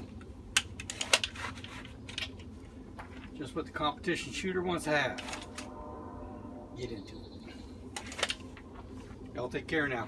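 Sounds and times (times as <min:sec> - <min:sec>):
low steady background noise: 0:00.0 - 0:10.0.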